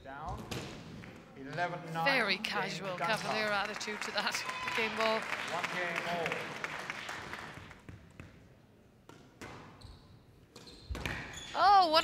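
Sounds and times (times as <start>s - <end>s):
crowd noise: 1.9s - 7.6s.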